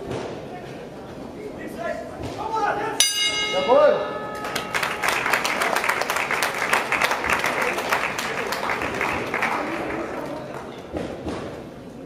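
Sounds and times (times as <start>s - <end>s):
boxing ring bell: 3.0s - 5.2s
spectators clapping: 4.3s - 11.3s.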